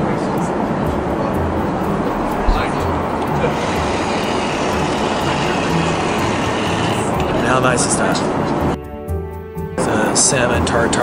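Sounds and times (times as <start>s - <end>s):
airliner cabin noise: 0.0s - 8.8s.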